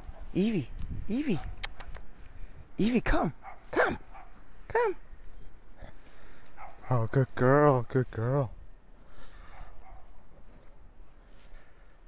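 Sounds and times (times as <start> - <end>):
paws crunching in snow: 9.0 - 12.0.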